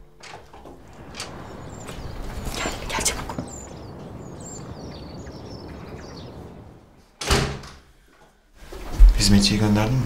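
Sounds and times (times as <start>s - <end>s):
wooden door thudding shut: 7.2s - 7.9s.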